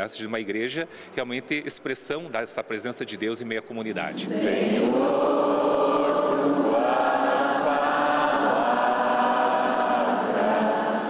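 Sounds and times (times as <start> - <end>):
church choir singing a hymn: 4.0 - 11.0.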